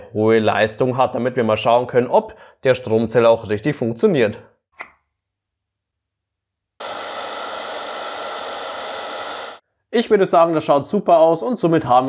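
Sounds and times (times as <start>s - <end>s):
hair dryer blowing: 6.8s - 9.6s.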